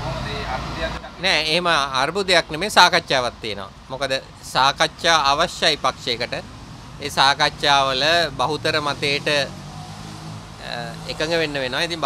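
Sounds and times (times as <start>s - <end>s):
man speaking into microphones: 0.0s - 6.4s, 7.0s - 9.5s, 10.6s - 12.0s.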